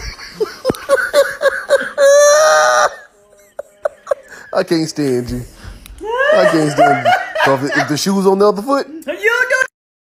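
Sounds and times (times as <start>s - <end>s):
woman shrieking with laughter: 0.9s - 3.1s, 6.0s - 7.1s.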